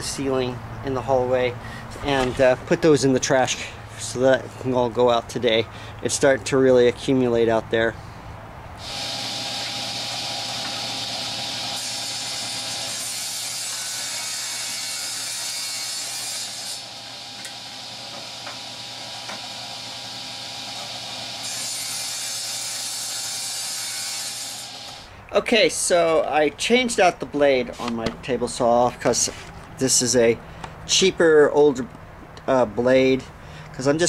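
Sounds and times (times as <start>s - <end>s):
table saw cutting wood: 8.8s - 25.1s.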